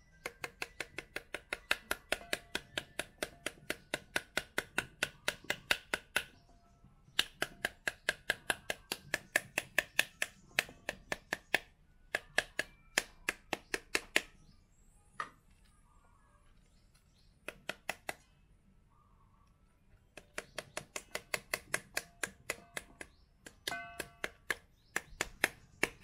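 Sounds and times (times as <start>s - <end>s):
knife handle rapping pomegranate: 0.2s - 6.4s, 7.2s - 14.3s, 20.2s - 26.0s.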